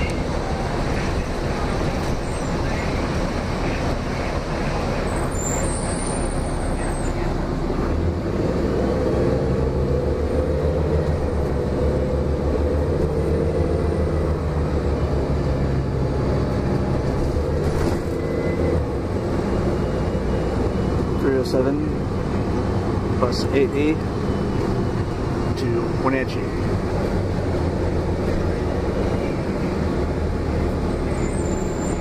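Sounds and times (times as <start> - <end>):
bus engine drone: 0.0 - 32.0
road rumble: 0.0 - 32.0.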